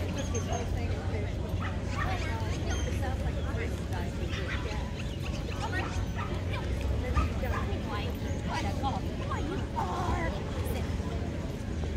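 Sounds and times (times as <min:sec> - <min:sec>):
people talking: 0:00.0 - 0:11.9.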